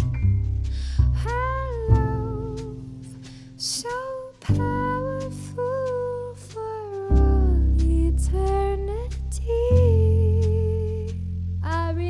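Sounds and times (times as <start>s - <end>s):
sustained backing chords: 0.0s - 12.0s.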